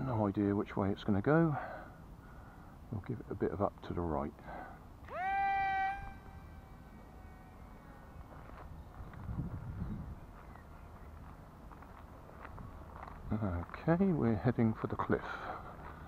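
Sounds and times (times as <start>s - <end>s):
electric propeller motor whine: 5.1s - 9.8s.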